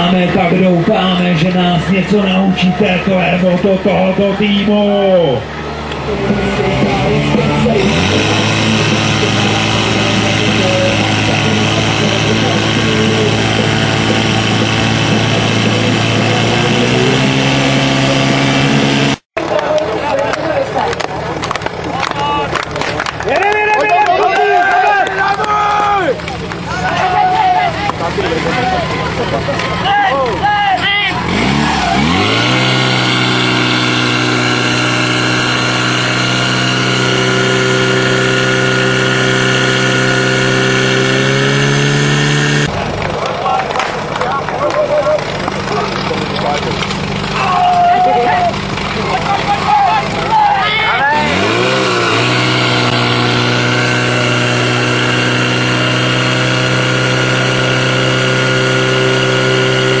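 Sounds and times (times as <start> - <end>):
fire pump engine revving: 0.0 - 60.0
people shouting: 23.3 - 27.9, 47.3 - 48.6, 49.3 - 51.8.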